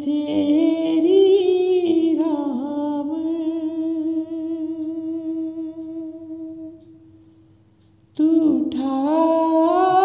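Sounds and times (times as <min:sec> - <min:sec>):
woman singing a long note: 0:00.0 - 0:07.0, 0:08.2 - 0:10.0.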